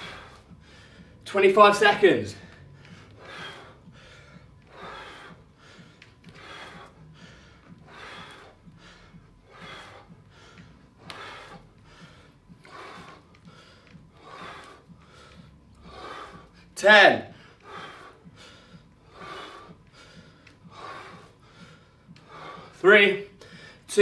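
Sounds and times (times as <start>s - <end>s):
man breathing hard: 0.0s - 24.0s.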